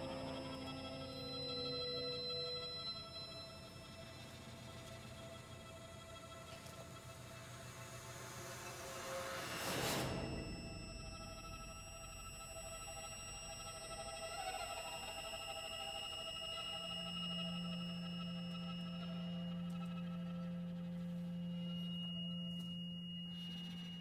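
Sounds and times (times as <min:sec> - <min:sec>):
high steady tone: 0:00.0 - 0:05.2, 0:10.0 - 0:24.0
chamber ensemble sustained notes: 0:00.0 - 0:24.0
low held note: 0:10.0 - 0:24.0.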